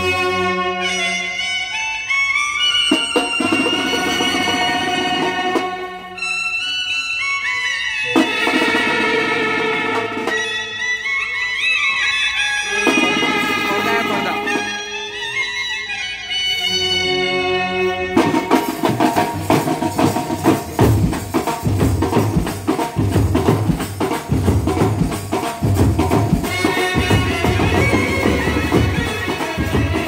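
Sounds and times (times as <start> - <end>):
drums: 0.0 - 15.9, 18.0 - 30.0
saxophone and trumpets melody: 0.0 - 20.9, 24.7 - 30.0.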